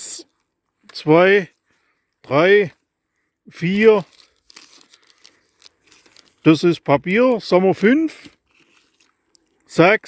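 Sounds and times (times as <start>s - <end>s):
wrappers crinkling faintly: 3.5s - 7.0s, 8.1s - 9.8s.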